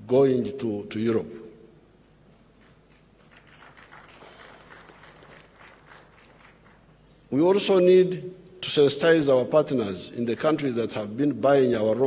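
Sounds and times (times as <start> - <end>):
low hall background: 0.0 - 12.0
scattered audience clapping: 2.6 - 7.0.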